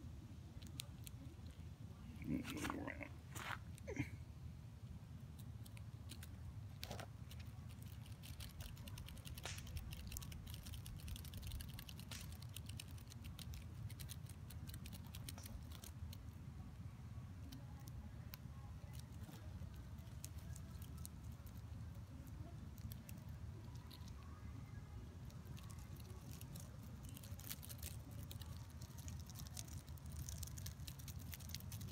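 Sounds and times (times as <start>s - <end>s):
steady low rumble: 0.0s - 31.9s
insect jaws crackling chewing: 5.4s - 16.2s, 25.2s - 31.9s.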